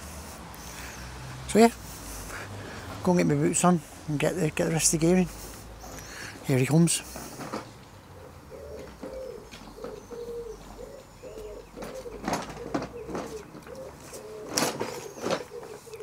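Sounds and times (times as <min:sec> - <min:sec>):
pigeon cooing: 0:08.1 - 0:16.0.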